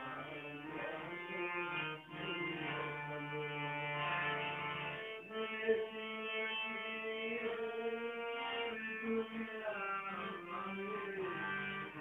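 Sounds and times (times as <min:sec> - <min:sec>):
instrumental music with held notes: 0:00.0 - 0:12.0.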